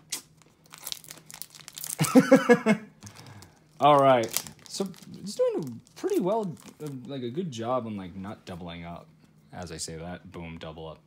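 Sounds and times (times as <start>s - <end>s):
foil wrappers crinkling: 0.1s - 2.4s, 3.0s - 7.3s.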